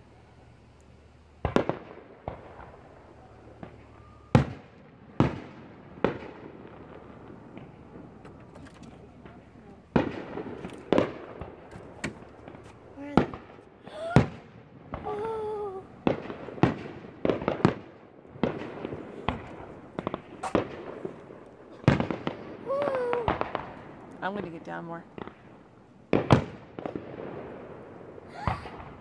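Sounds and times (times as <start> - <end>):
fireworks bursting: 0.0 - 29.0.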